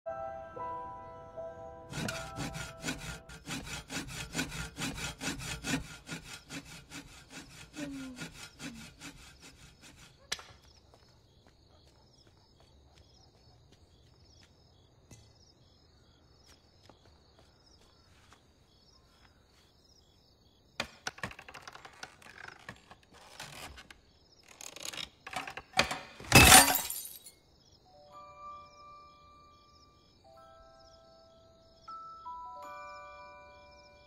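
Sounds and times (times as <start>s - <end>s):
faint high chirp: 27.9s - 34.0s.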